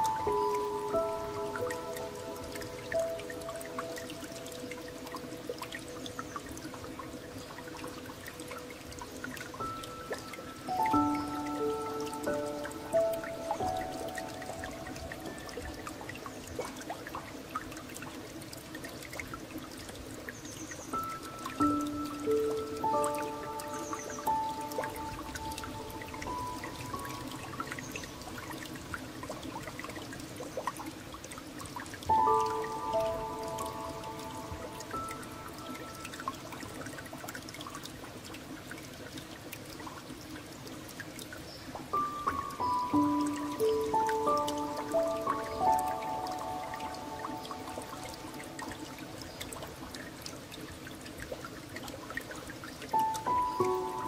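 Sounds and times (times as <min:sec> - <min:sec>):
running water: 0:00.0 - 0:54.0
slow gentle piano music: 0:00.0 - 0:54.0
water dripping: 0:00.0 - 0:54.0.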